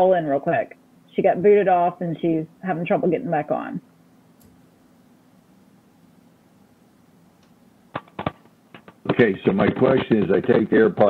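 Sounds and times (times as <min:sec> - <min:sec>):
faint steady line hum: 0:00.0 - 0:11.0
microphone handling clicks: 0:07.4 - 0:09.3.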